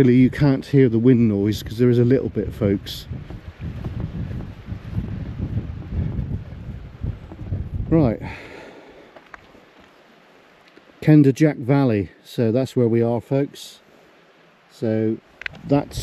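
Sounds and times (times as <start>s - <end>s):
wind buffeting microphone: 0.0s - 8.8s, 15.3s - 16.0s.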